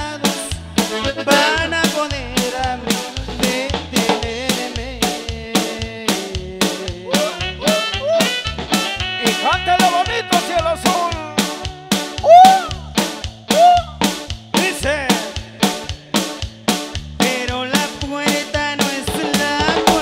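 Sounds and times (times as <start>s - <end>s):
accordion melody: 0.0s - 20.0s
bass: 0.0s - 20.0s
steady drum beat: 0.0s - 20.0s.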